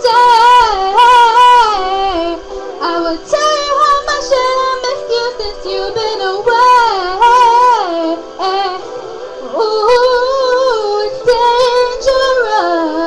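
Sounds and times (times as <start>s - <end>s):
woman singing a slow ballad: 0.0s - 8.9s, 9.5s - 13.0s
backing music: 0.0s - 13.0s.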